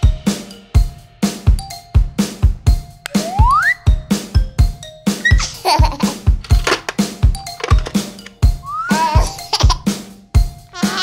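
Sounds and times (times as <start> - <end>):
cartoon song music with drum beat: 0.0 - 11.0
rising whistle-like glide: 3.2 - 3.9
baby giggling: 5.2 - 6.3, 8.7 - 9.9, 10.7 - 11.0.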